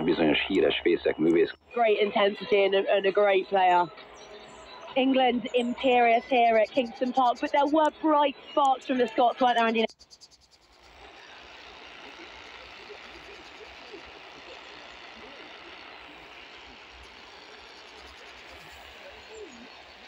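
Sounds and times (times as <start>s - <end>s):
radio broadcast voice: 0.0s - 4.0s, 4.8s - 9.9s
radio static hiss: 0.0s - 4.1s, 4.8s - 9.9s, 10.8s - 20.0s
faint wavering tones: 0.0s - 11.4s, 12.1s - 20.0s.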